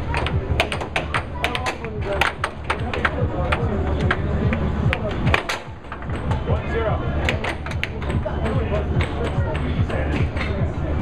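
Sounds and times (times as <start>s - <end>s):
air hockey puck clacking: 0.0s - 10.7s.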